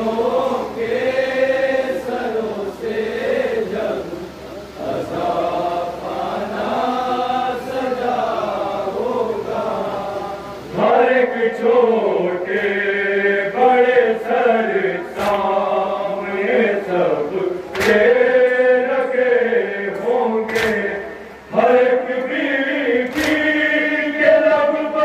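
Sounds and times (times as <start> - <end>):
men chanting a lament: 0.0 - 25.0.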